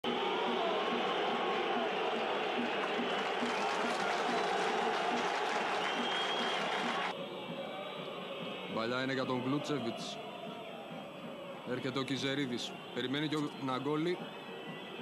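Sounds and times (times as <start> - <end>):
stadium crowd cheering and applauding: 0.0 - 8.7.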